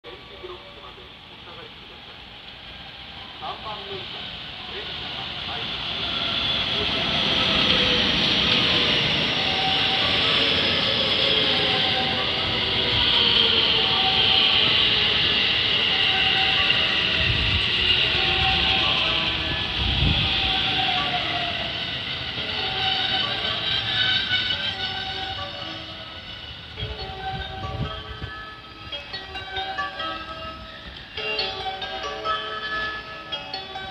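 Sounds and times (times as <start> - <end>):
electric train braking to a stop: 0.2 - 33.9
train motor whine: 5.5 - 32.0.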